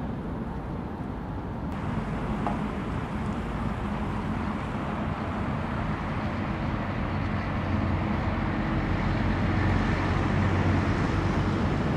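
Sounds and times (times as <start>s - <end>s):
low engine-like hum: 0.0s - 11.9s
traffic noise: 0.0s - 11.9s.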